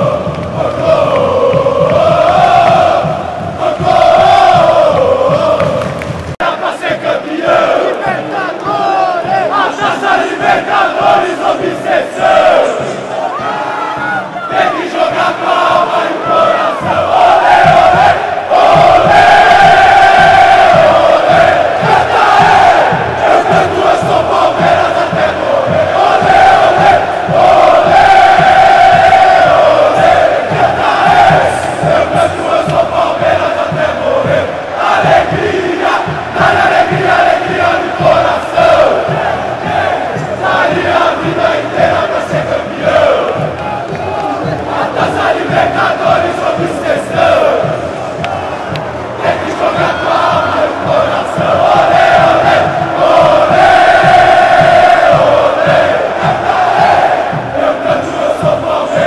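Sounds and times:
stadium crowd singing a chant: 0.0s - 59.0s.

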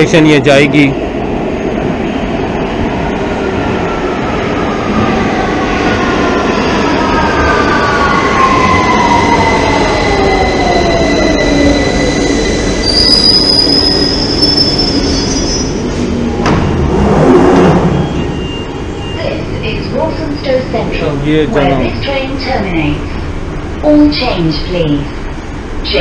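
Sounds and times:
underground train braking: 0.0s - 26.0s
high brake squeal: 11.0s - 15.8s.

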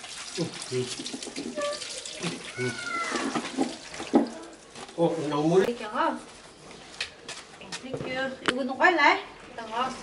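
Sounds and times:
water running from a tap: 0.0s - 4.8s
water splashing over hands: 0.0s - 4.8s.

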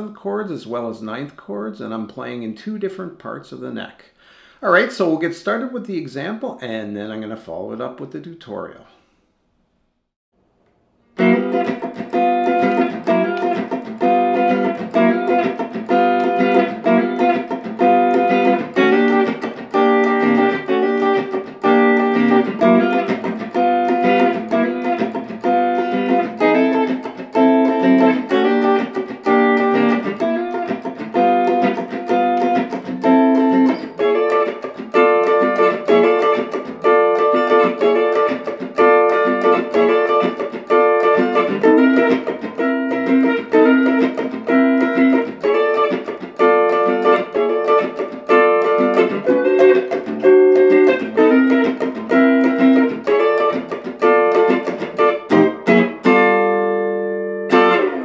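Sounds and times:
electric guitar funk rhythm chords: 11.1s - 58.0s.

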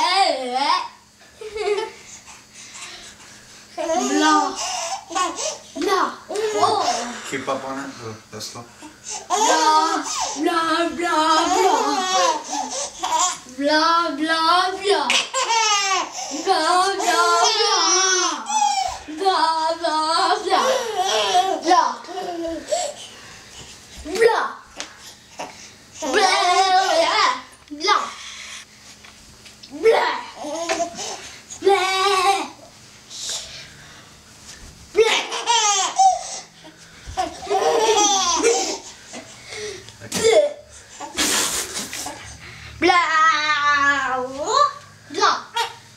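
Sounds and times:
child vocalizing and laughing: 9.2s - 10.5s, 11.1s - 13.5s, 15.0s - 19.2s, 20.2s - 23.0s, 37.2s - 41.2s
baby laughing: 11.3s - 13.4s, 15.1s - 16.4s, 20.5s - 23.0s, 35.0s - 36.5s, 37.2s - 38.9s.

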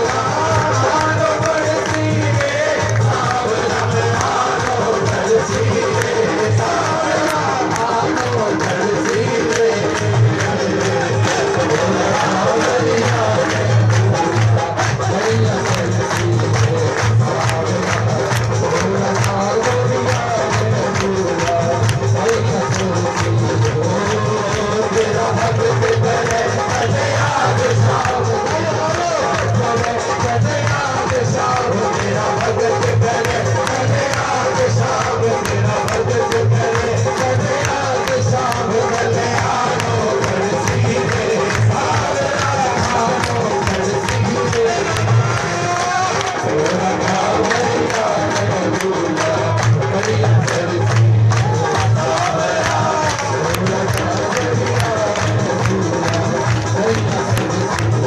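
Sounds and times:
band playing devotional music: 0.0s - 58.0s
fast percussion beat: 0.0s - 58.0s
man singing into microphone: 0.0s - 58.0s.

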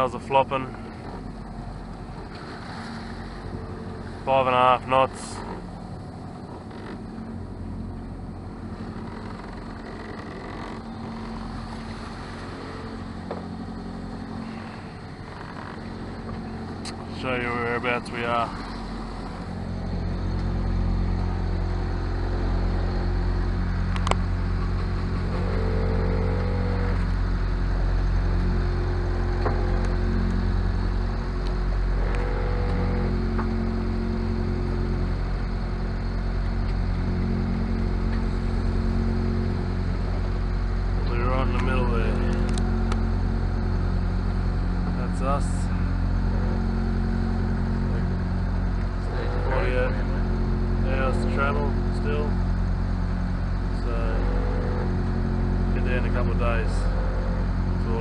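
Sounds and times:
boat engine droning: 0.0s - 58.0s.

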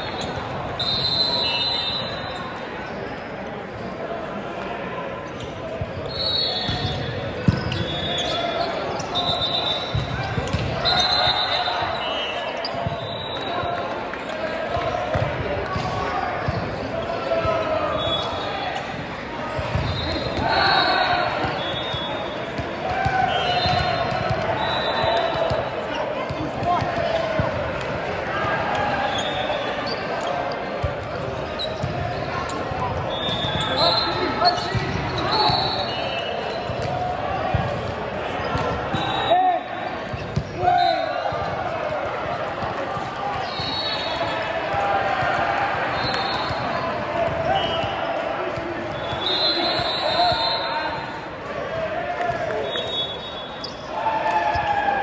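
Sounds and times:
voices calling out in hall: 0.0s - 55.0s
sneakers squeaking on court: 5.3s - 11.2s, 15.1s - 27.5s, 29.0s - 39.2s, 40.0s - 40.6s.

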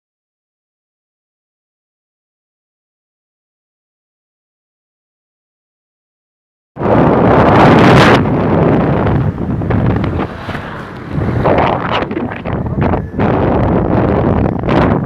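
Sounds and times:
vehicle and road noise: 6.8s - 15.0s
wind buffeting microphone: 6.8s - 15.0s.

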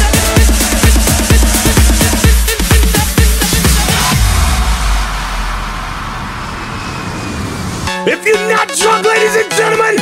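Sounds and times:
low bass hum: 0.1s - 8.0s.

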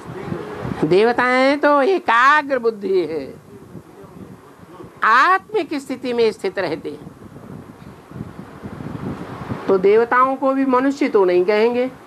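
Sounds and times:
man speaking: 3.4s - 5.0s.

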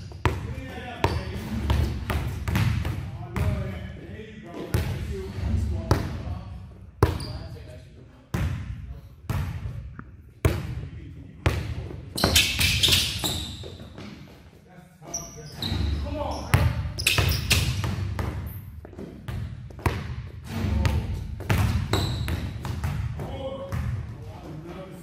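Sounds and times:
basketball bouncing on court: 0.0s - 3.8s, 7.0s - 7.4s, 8.3s - 10.8s, 15.7s - 24.2s.

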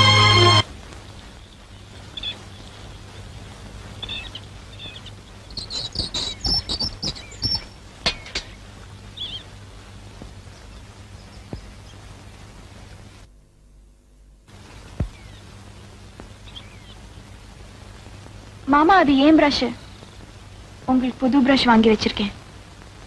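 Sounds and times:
birds chirping: 0.0s - 13.1s, 14.6s - 22.4s
low hum and hiss: 0.0s - 23.0s.

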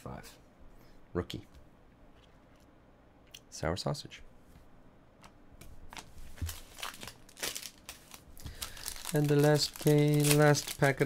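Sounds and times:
foil wrapper crinkling: 6.4s - 11.0s.

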